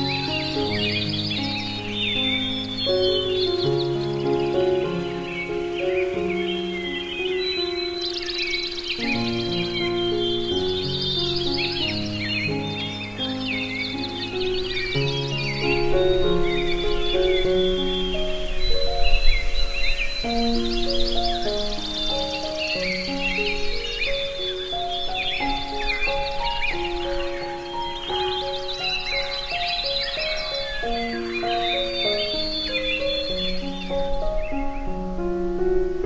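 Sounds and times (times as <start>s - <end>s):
birds chirping and trilling: 0.0s - 36.0s
slow soft piano melody: 0.0s - 36.0s.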